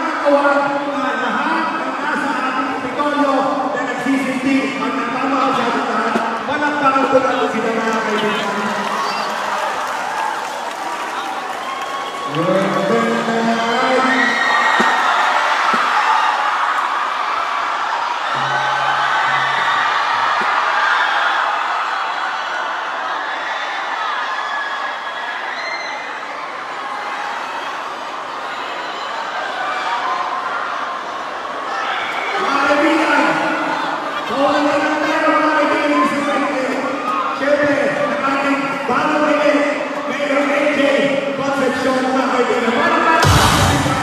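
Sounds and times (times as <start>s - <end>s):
man's voice: 0.0s - 9.2s, 32.4s - 44.0s
concert crowd cheering and shouting: 0.0s - 44.0s.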